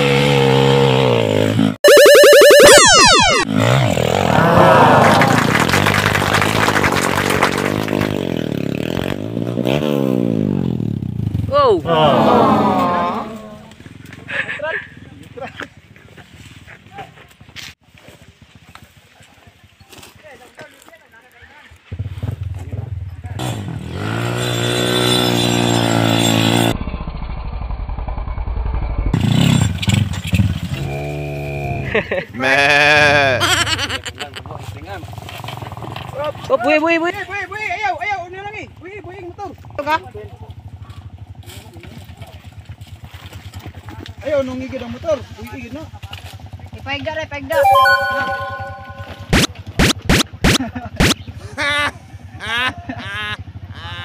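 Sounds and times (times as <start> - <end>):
motorcycle engines revving: 0.0 - 1.8, 3.4 - 15.3, 21.9 - 26.7.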